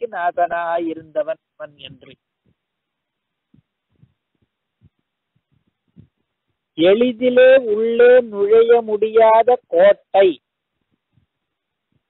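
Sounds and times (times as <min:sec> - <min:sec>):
faint low thumps: 0:03.4 - 0:06.7.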